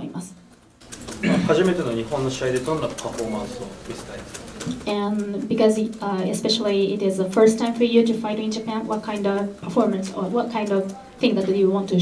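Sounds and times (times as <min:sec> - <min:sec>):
man speaking: 0:01.2 - 0:04.4.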